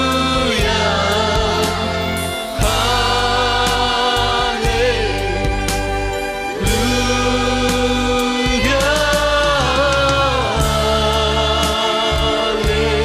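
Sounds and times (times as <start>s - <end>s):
choir singing worship song: 0.0s - 13.0s
steady bass: 0.0s - 13.0s.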